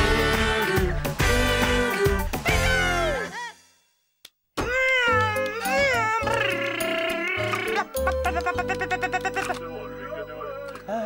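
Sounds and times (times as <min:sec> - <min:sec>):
cheerful music with bass line: 0:05.1 - 0:10.7
high gliding gibberish voice: 0:05.4 - 0:09.6.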